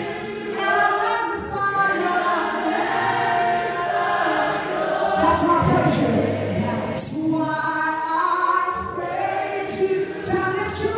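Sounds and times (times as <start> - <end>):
voices singing along: 0.0 - 10.9.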